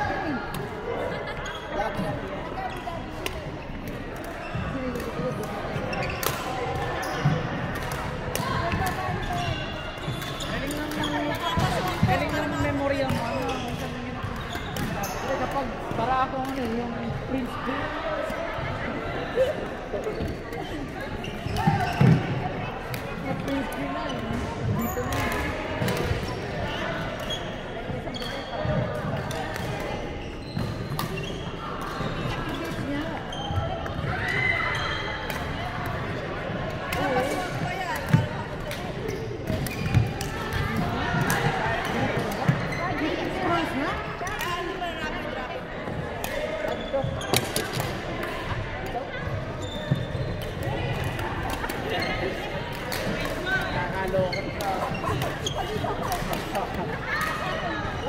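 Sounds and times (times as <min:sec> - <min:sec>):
voices talking: 0:00.0 - 0:58.0
rackets striking shuttlecock: 0:36.9 - 0:42.6, 0:47.3 - 0:48.4.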